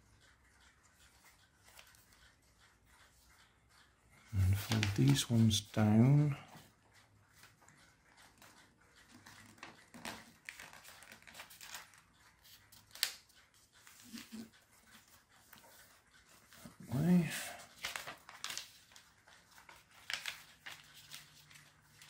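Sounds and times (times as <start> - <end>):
paper crinkles and clicks: 0.9 - 2.3, 4.3 - 5.8, 8.2 - 22.0
paper rustling and creasing: 4.4 - 5.4, 9.2 - 14.4, 17.2 - 22.0.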